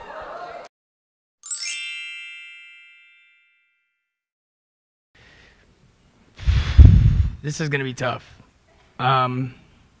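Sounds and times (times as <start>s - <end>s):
bright chime with upward sweep: 1.4s - 3.8s.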